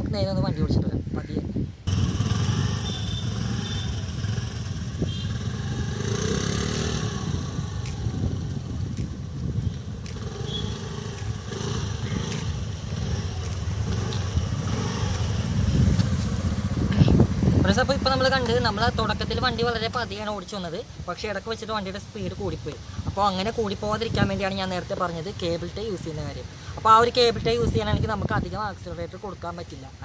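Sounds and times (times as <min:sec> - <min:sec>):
scooter engine running: 0:01.9 - 0:17.6.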